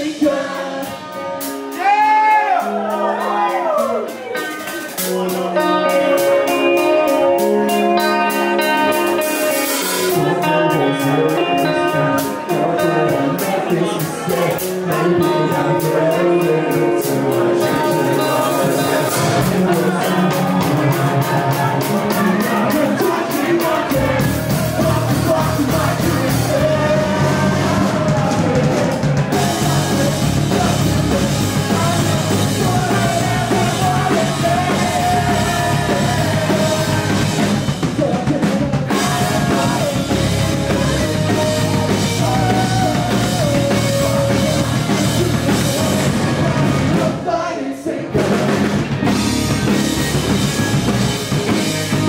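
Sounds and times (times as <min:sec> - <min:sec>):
drum kit: 0:00.0 - 0:52.0
live rock band playing: 0:00.0 - 0:52.0.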